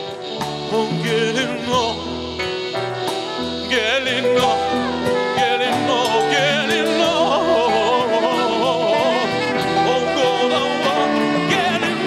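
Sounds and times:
man singing into a microphone: 0.0 - 2.4, 3.2 - 12.0
band playing: 0.0 - 12.0.

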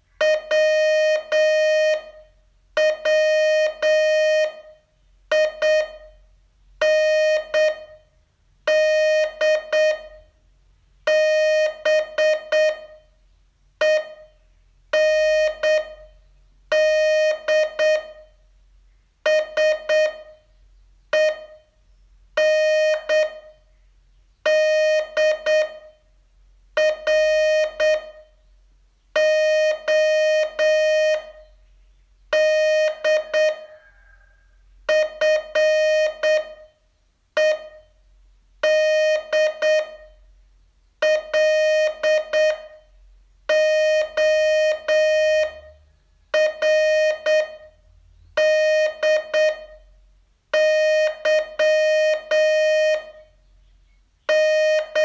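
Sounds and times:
morse code beeps: 0.2 - 6.2, 6.8 - 8.0, 8.7 - 10.3, 11.1 - 13.0, 13.8 - 14.4, 15.0 - 18.3, 19.3 - 20.4, 21.1 - 21.7, 22.4 - 23.6, 24.5 - 26.0, 26.8 - 28.3, 29.2 - 31.5, 32.3 - 34.2, 34.9 - 36.8, 37.4 - 37.9, 38.6 - 40.2, 41.0 - 42.8, 43.5 - 45.8, 46.4 - 47.8, 48.4 - 49.9, 50.6 - 53.3, 54.3 - 55.0.

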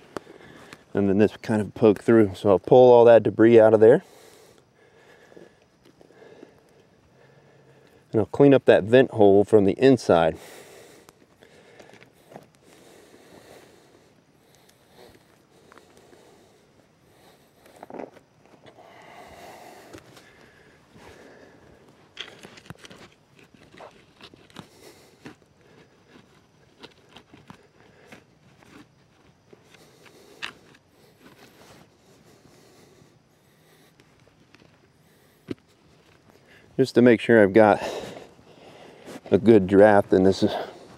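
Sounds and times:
digging stick scraping soil: 22.1 - 32.5.

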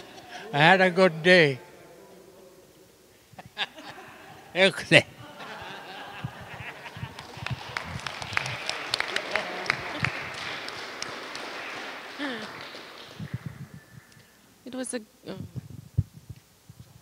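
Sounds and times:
audience applauding: 5.6 - 14.4.

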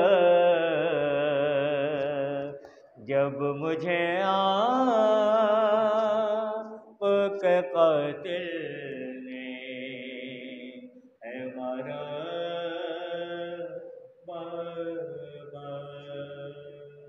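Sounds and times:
man chanting unaccompanied: 0.0 - 17.0
breaths: 2.6 - 3.0.

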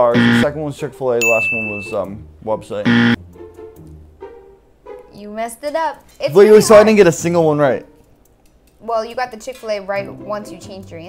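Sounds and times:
loud buzzer: 0.0 - 0.5, 2.9 - 3.2.

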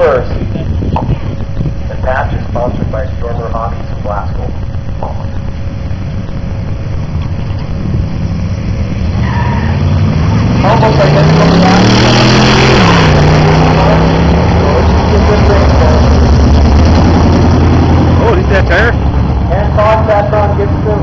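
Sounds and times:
car engine accelerating: 0.0 - 21.0.

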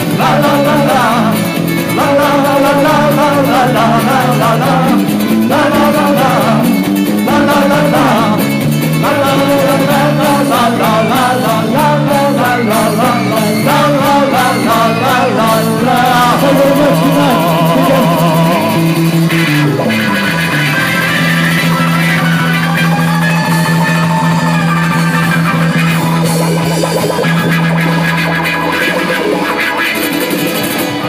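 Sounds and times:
drums: 0.0 - 31.0.

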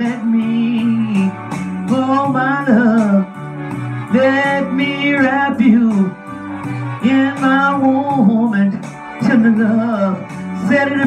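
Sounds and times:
woman singing into a microphone: 0.0 - 3.4, 4.1 - 6.2, 7.0 - 11.0
karaoke backing track with guitar: 0.0 - 11.0.

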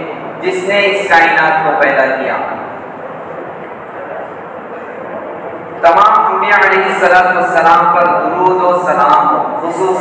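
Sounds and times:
man talking loudly: 5.8 - 10.0.

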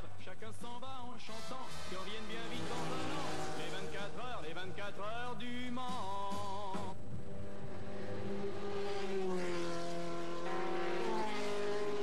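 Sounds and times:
song with singing: 0.0 - 7.0
race car passing: 1.2 - 12.0.

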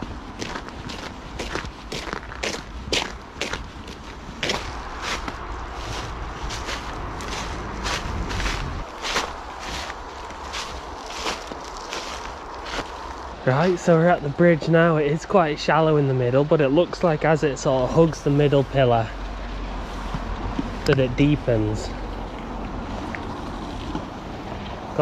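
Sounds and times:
footsteps on snowy ground: 0.0 - 14.0, 17.9 - 25.0
low rumble: 0.0 - 15.6.

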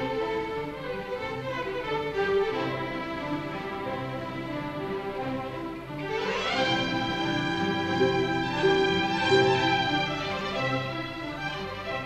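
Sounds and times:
lower strings: 0.0 - 12.0
orchestra playing fast dance: 0.0 - 12.0
violins: 0.0 - 12.0.

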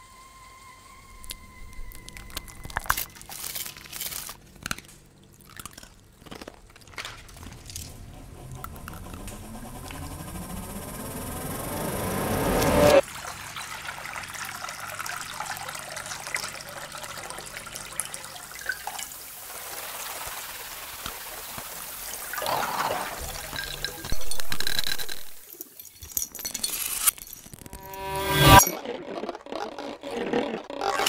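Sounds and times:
electroacoustic rising sweeps: 7.8 - 13.0, 27.6 - 31.0
trickling water-like texture: 13.0 - 27.6.

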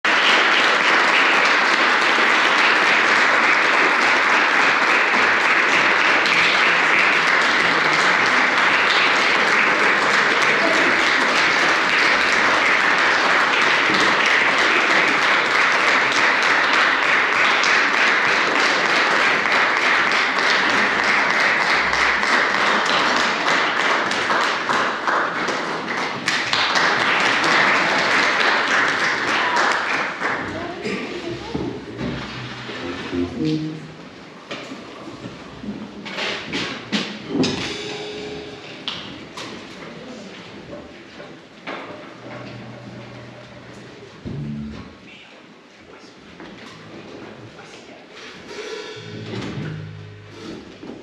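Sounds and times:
audience applauding: 0.0 - 31.2.

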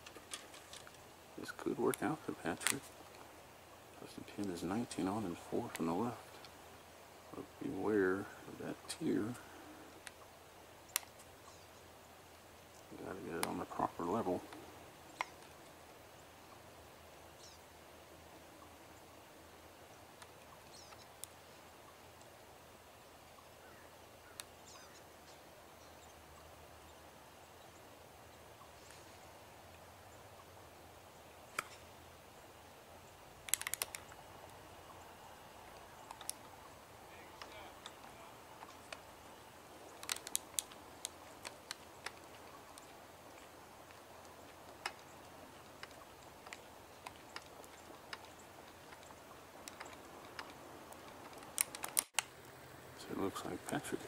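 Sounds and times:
faint outdoor background: 0.0 - 54.0.

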